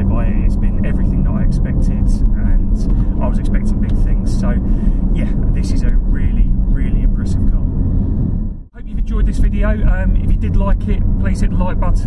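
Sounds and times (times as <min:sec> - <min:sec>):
man talking: 0:00.0 - 0:07.7, 0:08.8 - 0:12.0
car engine drone in cabin: 0:00.0 - 0:12.0
road and tyre noise: 0:00.0 - 0:12.0.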